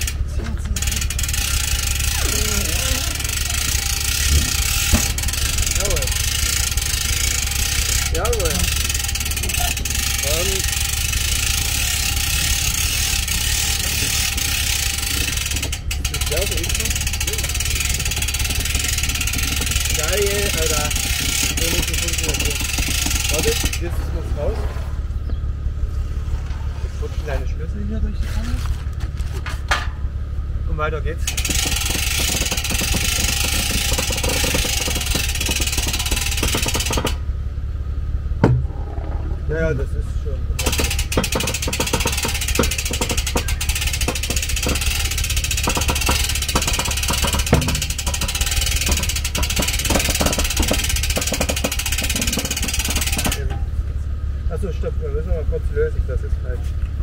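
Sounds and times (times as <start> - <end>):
electric winch whirring and clicking: 0.0 - 27.2, 31.2 - 37.3, 40.6 - 53.9
low steady hum: 0.0 - 57.0
vehicle engine idling: 0.0 - 57.0.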